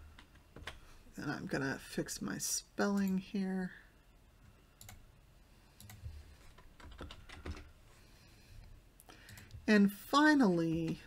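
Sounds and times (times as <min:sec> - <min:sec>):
faint keyboard typing: 0:00.0 - 0:00.9, 0:04.4 - 0:05.1, 0:05.7 - 0:07.8, 0:09.0 - 0:09.7.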